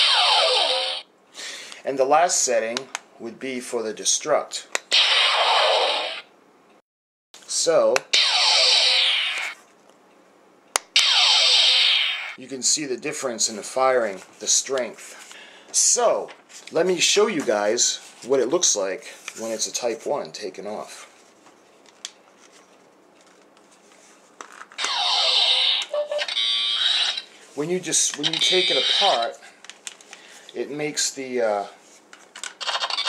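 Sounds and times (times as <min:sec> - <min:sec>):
buzzing electronic beam sound: 0:00.0 - 0:01.1, 0:04.9 - 0:06.3, 0:08.2 - 0:09.6, 0:11.0 - 0:12.4, 0:24.8 - 0:27.3, 0:28.3 - 0:29.3.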